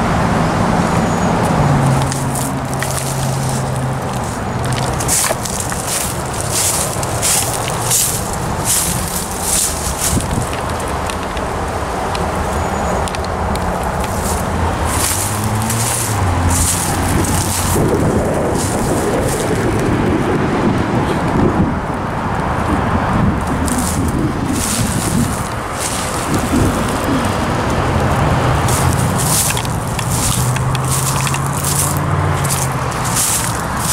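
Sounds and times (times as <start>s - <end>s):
steady rushing rumble: 0.0s - 33.9s
footsteps crunching dry leaves: 1.4s - 19.9s, 23.5s - 33.9s.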